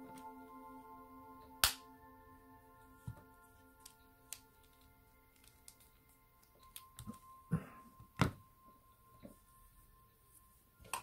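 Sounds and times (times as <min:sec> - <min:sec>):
background music of held tones: 0:00.0 - 0:11.0.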